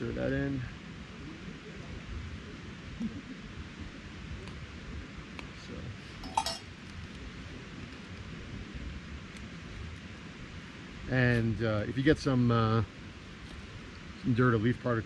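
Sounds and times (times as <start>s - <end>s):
spoon clinking on metal pot: 6.2s - 6.6s.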